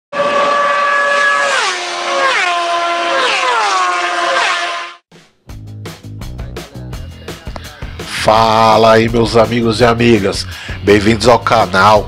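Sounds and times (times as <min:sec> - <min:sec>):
pitched tone sliding down: 0:00.2 - 0:05.0
music with bass and guitar: 0:05.1 - 0:12.0.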